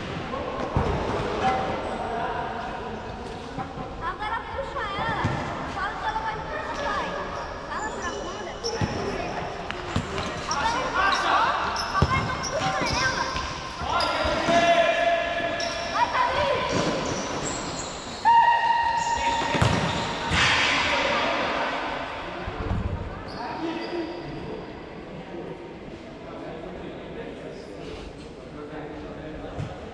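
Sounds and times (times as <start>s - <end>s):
ball kicked and bouncing indoors: 19.4s - 20.4s, 29.6s - 29.8s.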